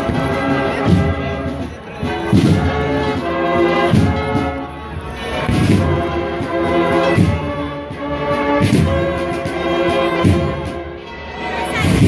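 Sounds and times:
deep drum beat: 0.0 - 4.7, 5.4 - 10.8
bugles playing held chords: 0.0 - 12.0.

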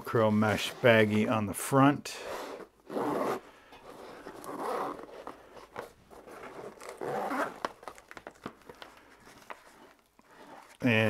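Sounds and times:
zipper being pulled open: 2.2 - 10.8.

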